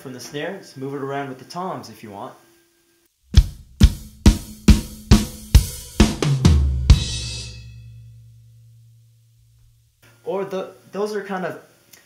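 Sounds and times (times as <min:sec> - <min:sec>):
drum fill on snare and toms: 0:03.3 - 0:08.4
crash cymbal and bass drum hit: 0:03.4 - 0:09.2.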